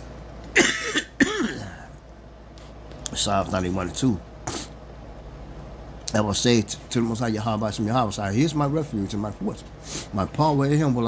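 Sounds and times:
man coughing: 0.5 - 1.9.

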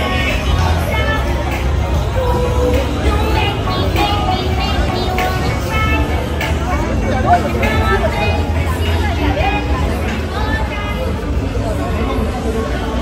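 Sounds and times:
bar music with heavy bass: 0.0 - 11.8
crowd chatter: 0.0 - 13.0.

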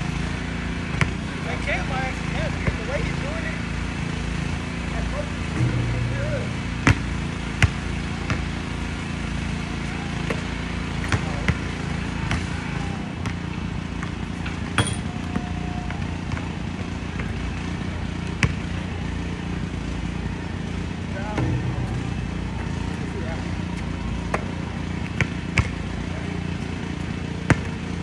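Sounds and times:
basketball bouncing on court: 0.1 - 19.5, 20.2 - 28.0.

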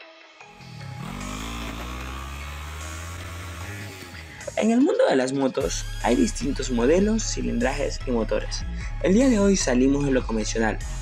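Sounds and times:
motorcycle engine revving in burnout: 0.6 - 4.5.

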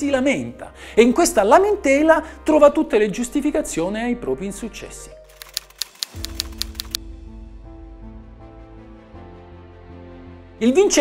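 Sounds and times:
background music: 0.0 - 11.0
quick typing clicks: 5.3 - 7.0.

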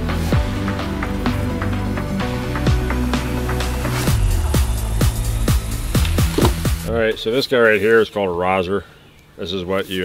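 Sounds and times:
electronic music: 0.0 - 7.4
steady kick drum beat: 0.3 - 7.3.

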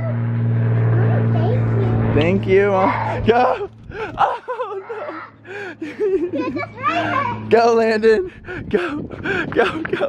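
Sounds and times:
motor humming: 0.0 - 10.0.

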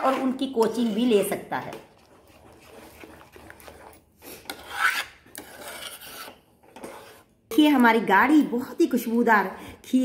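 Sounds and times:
metal spoon scraping metal pan: 0.0 - 7.8.

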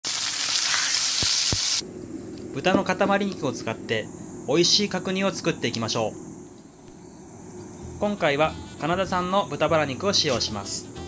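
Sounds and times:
meat sizzling in a frying pan: 0.0 - 1.8.

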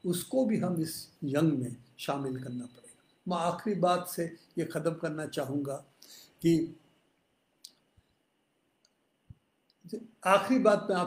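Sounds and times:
person speaking: 0.0 - 6.8, 9.9 - 11.0
faint clicks and taps: 8.8 - 9.9.

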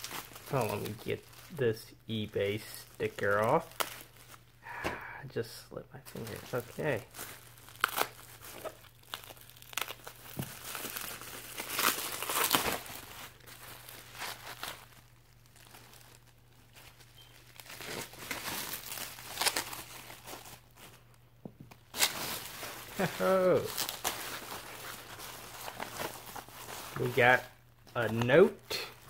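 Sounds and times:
bubble wrap crinkling: 0.0 - 4.8, 6.0 - 29.0.

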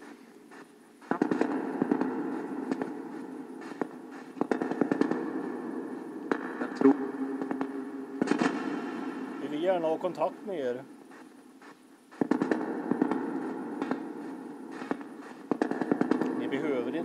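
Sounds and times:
radio static crackling: 0.0 - 17.0.

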